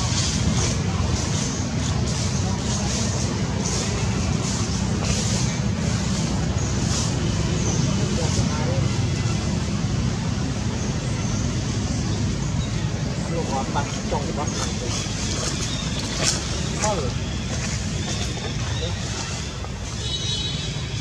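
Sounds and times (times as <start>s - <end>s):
low rumbling background noise: 0.0s - 21.0s.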